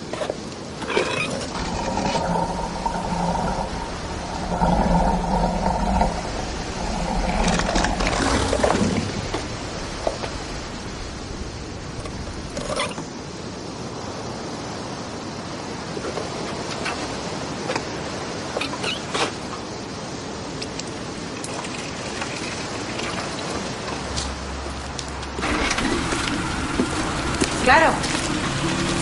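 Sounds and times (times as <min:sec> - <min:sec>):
water pipes groaning and rattling: 0:00.8 - 0:10.9, 0:25.3 - 0:29.0.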